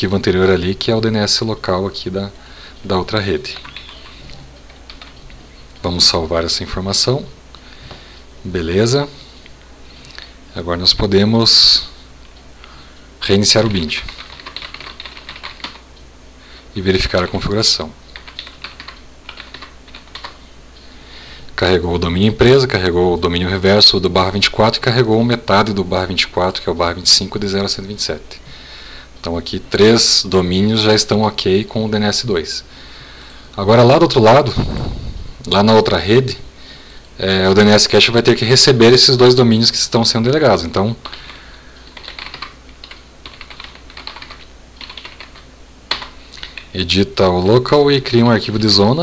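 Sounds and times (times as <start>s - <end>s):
computer keyboard typing: 3.4s - 5.4s, 14.1s - 15.8s, 18.1s - 20.4s, 41.9s - 46.1s.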